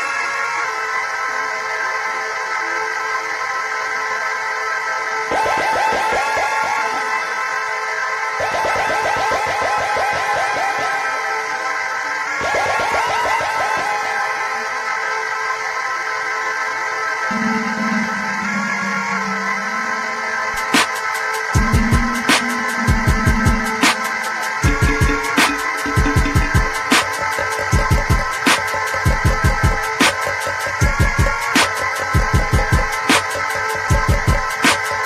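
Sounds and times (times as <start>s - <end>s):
held synthesizer chord: 17.3s - 27.8s
fast repeated keyboard notes: 17.3s - 34.8s.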